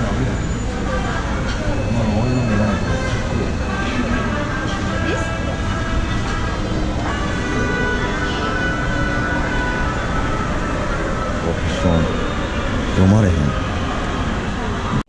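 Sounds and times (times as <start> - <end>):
indistinct voices murmuring: 0.0 - 15.0.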